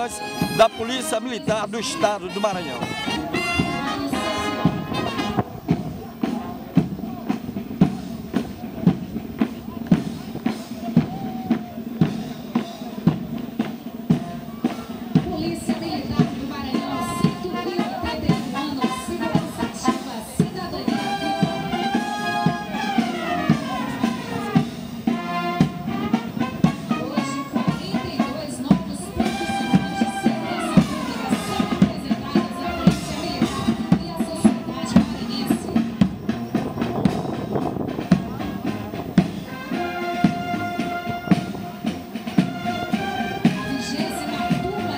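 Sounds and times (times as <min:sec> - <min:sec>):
bass drum and snare beat: 0:00.0 - 0:44.9
brass line: 0:00.0 - 0:44.9
marching band playing a march: 0:00.0 - 0:44.9.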